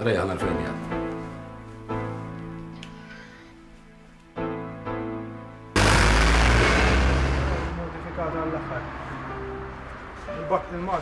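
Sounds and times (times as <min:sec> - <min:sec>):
van driving past: 0:05.8 - 0:11.0.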